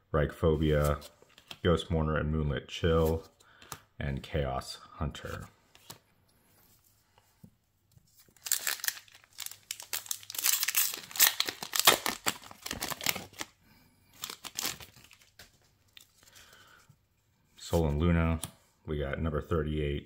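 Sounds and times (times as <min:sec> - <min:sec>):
cards rustling: 0:00.7 - 0:01.7, 0:08.0 - 0:16.7
foil wrapper crinkling and tearing: 0:08.3 - 0:13.5, 0:14.2 - 0:15.3.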